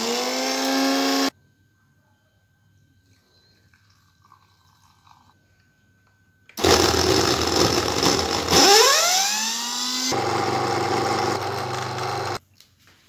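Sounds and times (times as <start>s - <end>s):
electric blender blending: 0.0s - 1.3s, 6.6s - 12.4s.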